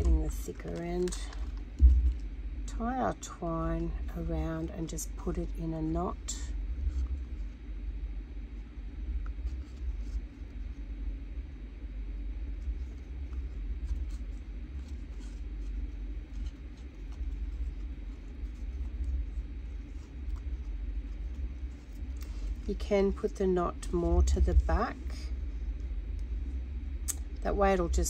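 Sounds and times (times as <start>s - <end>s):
steady low rumble: 0.0s - 28.0s.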